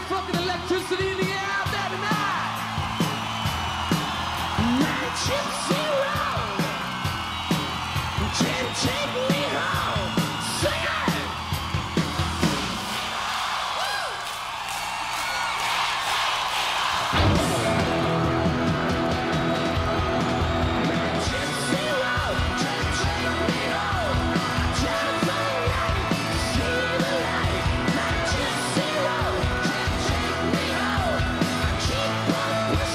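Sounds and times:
live rock band playing: 0.0s - 12.9s, 17.1s - 32.9s
whooping vocal yells: 0.0s - 32.9s.

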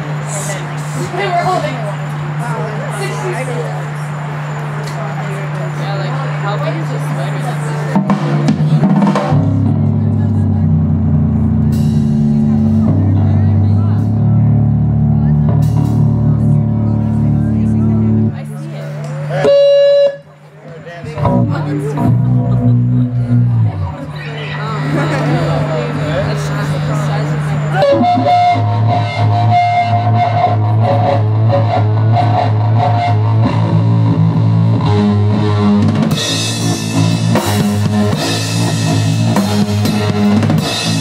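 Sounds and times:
bass guitar and drums playing: 7.9s - 18.6s, 21.0s - 41.0s.

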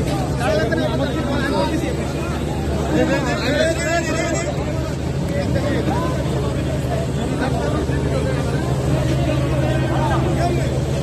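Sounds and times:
boat engine running: 0.0s - 11.0s
crowd talking and calling out: 0.0s - 11.0s.

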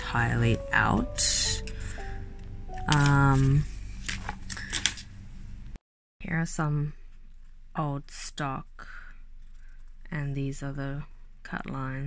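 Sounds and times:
low steady hum: 0.0s - 12.0s
paper sheets rustling: 2.7s - 5.1s.

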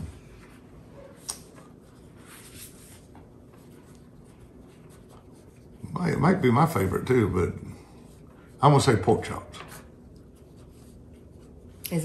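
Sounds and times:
paper rustling and scratching: 1.2s - 6.3s.

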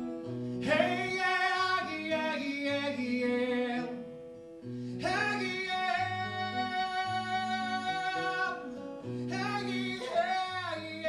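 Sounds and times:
acoustic guitar chords: 0.0s - 11.0s
man singing a high held note: 5.0s - 8.6s.

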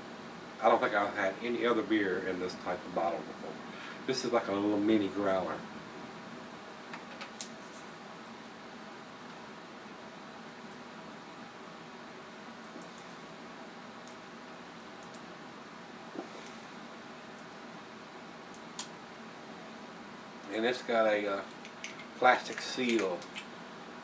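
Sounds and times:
low room hum: 0.0s - 24.0s.

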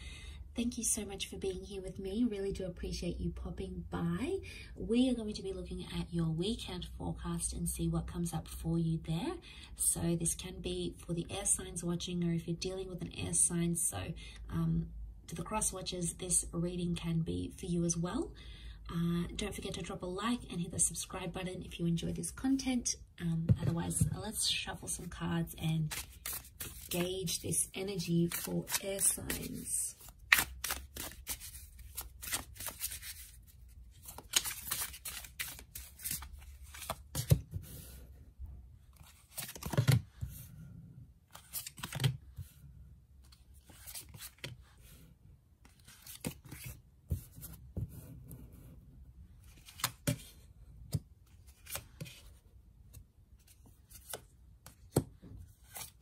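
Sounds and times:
cards being shuffled: 25.8s - 37.4s, 39.0s - 40.2s, 41.3s - 42.2s, 43.3s - 44.5s, 45.6s - 47.5s, 49.5s - 50.3s, 50.9s - 52.3s, 53.4s - 55.0s, 55.6s - 56.0s.

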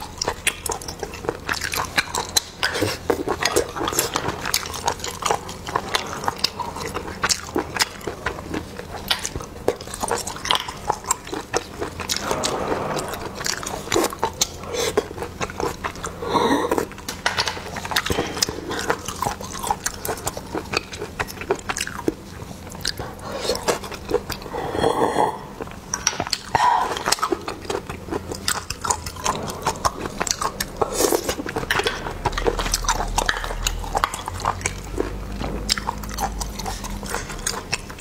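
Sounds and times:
wet mouth clicks and chewing: 0.0s - 38.0s.

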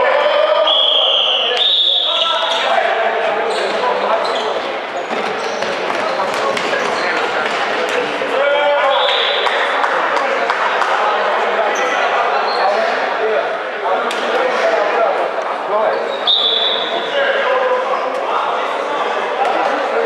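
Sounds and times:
players and spectators calling out: 0.0s - 20.0s.

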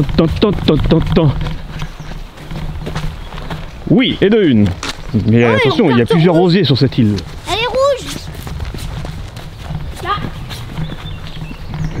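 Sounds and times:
footsteps hurrying over grass: 0.0s - 12.0s
microphone handling rumble: 0.0s - 12.0s.

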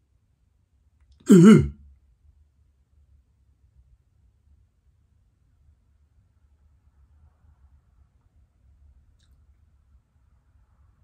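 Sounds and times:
man clearing his throat: 1.2s - 1.8s.

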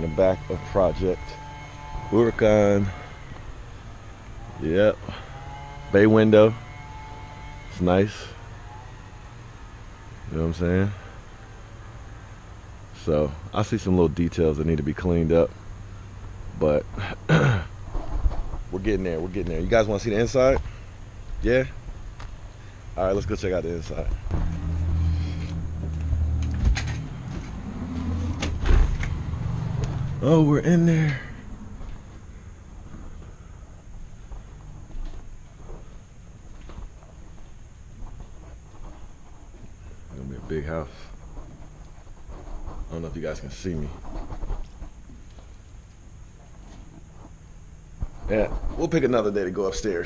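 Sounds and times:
footsteps on concrete floor: 24.3s - 28.9s.

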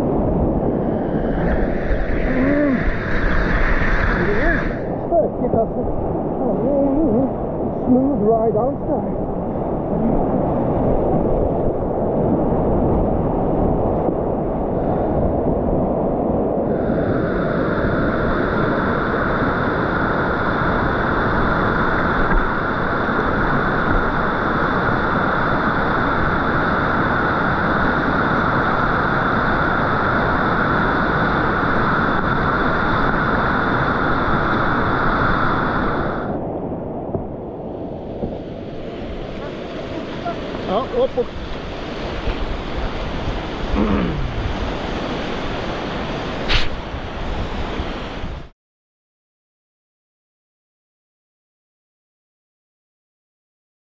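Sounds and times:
wind on microphone: 0.0s - 48.5s
whitewater rushing: 37.8s - 48.4s
high hiss: 45.0s - 47.1s.

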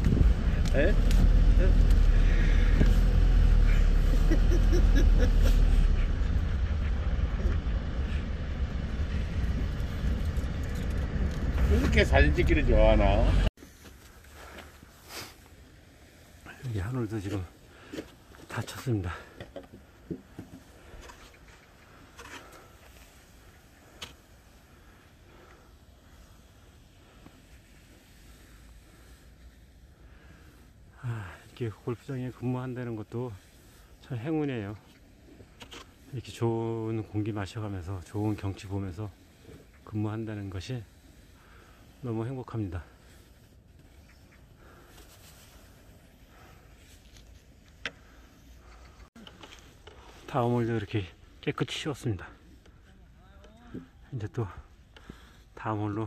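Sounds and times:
faint outdoor background noise: 0.0s - 56.0s.

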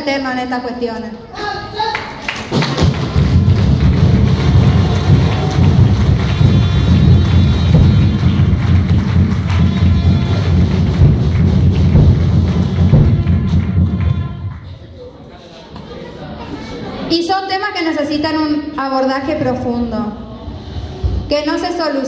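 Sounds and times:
audience applause: 1.9s - 14.8s.

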